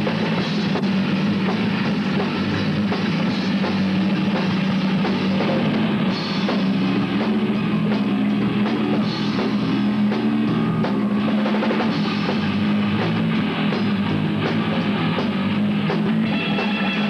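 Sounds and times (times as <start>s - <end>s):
drum kit hits: 0.0s - 17.0s
rock band playing live: 0.0s - 17.0s.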